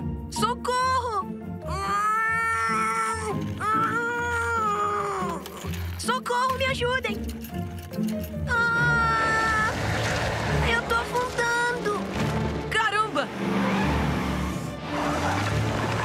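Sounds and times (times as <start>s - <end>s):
cartoon theme music with singing: 0.2s - 7.2s.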